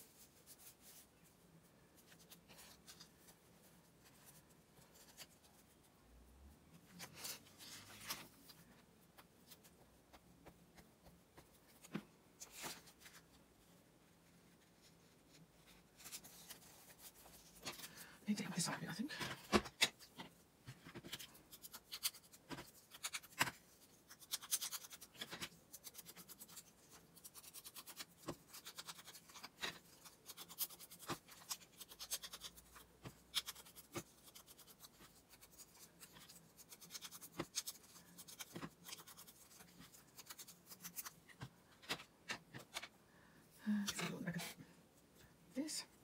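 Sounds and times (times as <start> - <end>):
hands handling paper: 6.8 - 13.4, 19.1 - 42.9.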